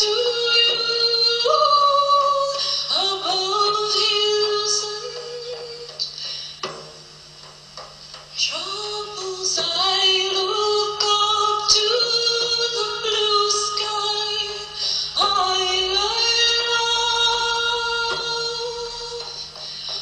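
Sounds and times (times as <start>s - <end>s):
woman singing long notes: 0.0s - 6.2s, 8.4s - 20.0s
frame drum strikes: 0.0s - 20.0s.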